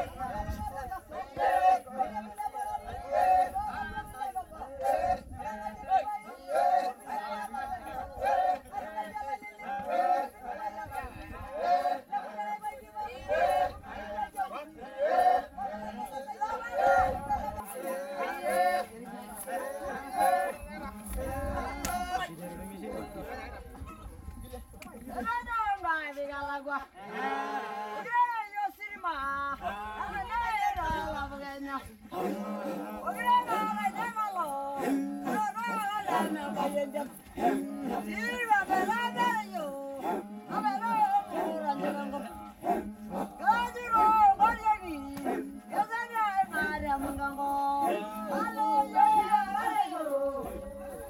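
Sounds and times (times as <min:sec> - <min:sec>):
group chanting and singing: 0:00.0 - 0:51.0.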